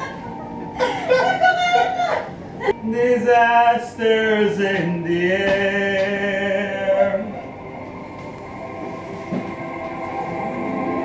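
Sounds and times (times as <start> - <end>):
instrumental backing music: 0.0 - 11.0
man singing: 2.8 - 7.6.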